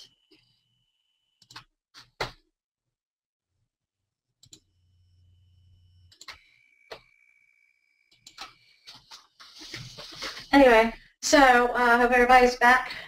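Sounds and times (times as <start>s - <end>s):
computer mouse clicks: 1.4s - 2.4s, 4.4s - 4.7s, 6.1s - 7.1s, 8.1s - 9.5s
faint steady high tone: 4.6s - 8.8s.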